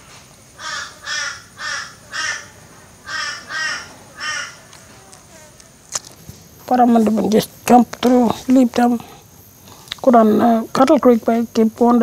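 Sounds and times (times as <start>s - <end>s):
bird calling: 0.6s - 5.3s.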